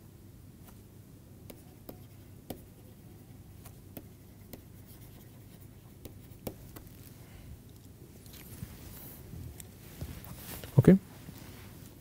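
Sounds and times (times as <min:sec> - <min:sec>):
stylus scratching on tablet: 0:01.5 - 0:07.1.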